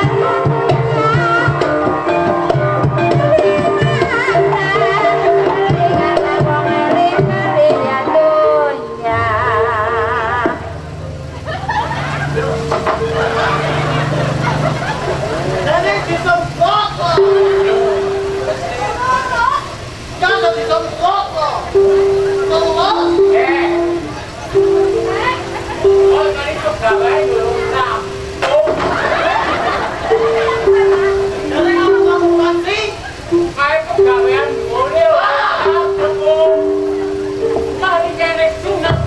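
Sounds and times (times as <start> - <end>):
gamelan music: 0.0 - 39.0
actors speaking and calling out: 15.4 - 28.9, 30.0 - 39.0.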